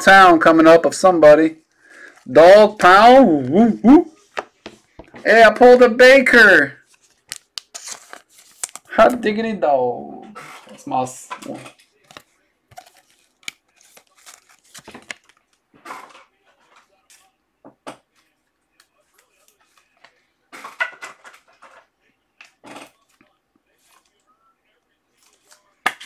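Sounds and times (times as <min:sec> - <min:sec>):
cards and wrappers rustling: 0:01.8 - 0:05.5, 0:06.4 - 0:09.3, 0:10.4 - 0:17.4, 0:18.2 - 0:24.2, 0:25.1 - 0:26.0.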